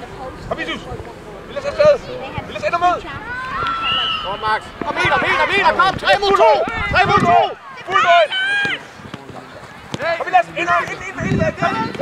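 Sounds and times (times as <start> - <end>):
open-air field noise: 0.0 - 12.0.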